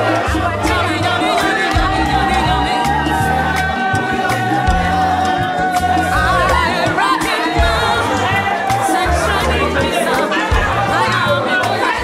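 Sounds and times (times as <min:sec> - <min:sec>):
crowd chattering: 0:00.0 - 0:12.0
crowd singing along: 0:00.0 - 0:12.0
loud music with stepping bass: 0:00.0 - 0:12.0.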